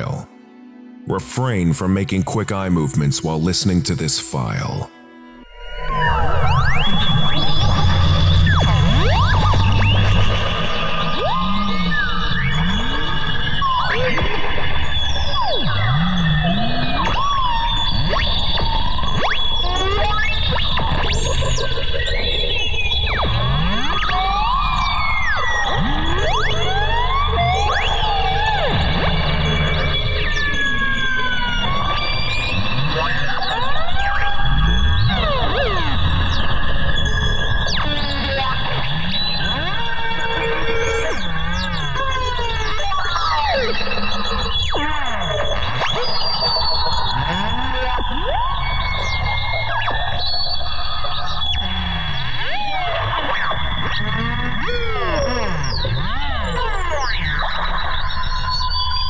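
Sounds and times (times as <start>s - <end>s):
sliding squeals and whistles: 5.7s - 59.0s.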